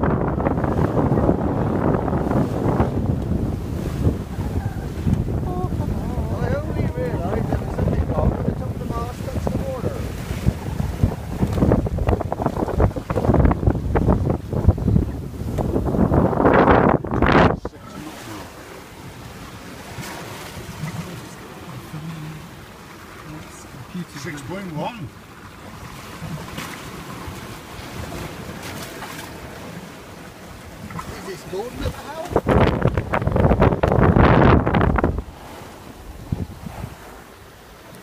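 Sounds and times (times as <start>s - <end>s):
sea rushing along hull: 0.0s - 38.0s
wind buffeting microphone: 0.0s - 38.0s.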